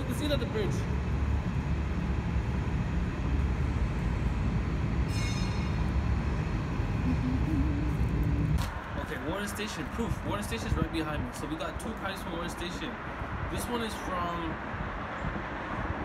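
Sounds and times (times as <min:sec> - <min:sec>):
subway train rumbling: 0:00.0 - 0:09.0
high squeal: 0:05.0 - 0:06.5.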